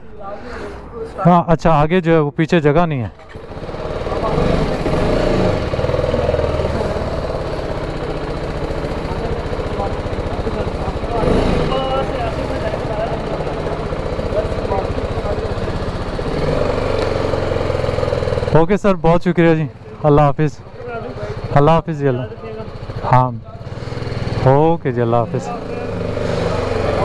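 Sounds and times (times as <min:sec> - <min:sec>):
motorcycle engine running: 0:03.2 - 0:27.0.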